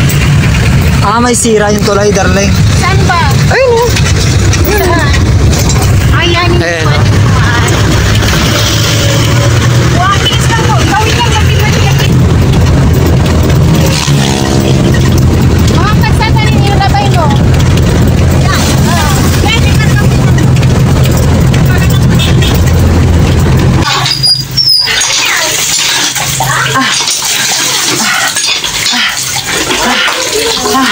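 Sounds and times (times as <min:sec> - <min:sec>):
vehicle engine and road noise: 0:00.0 - 0:29.7.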